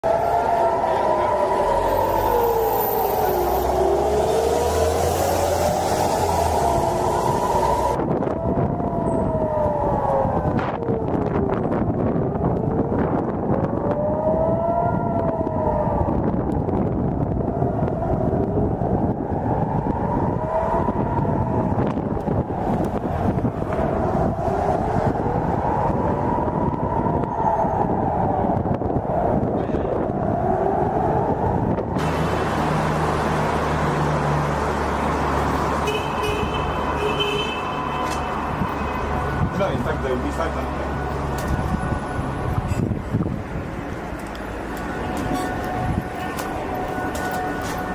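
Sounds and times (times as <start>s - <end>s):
air-raid sirens wailing: 0.0s - 47.9s.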